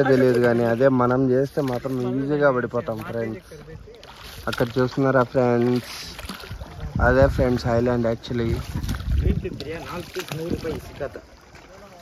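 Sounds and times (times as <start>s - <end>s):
man talking: 0.0s - 6.2s
water lapping around boat: 0.0s - 12.0s.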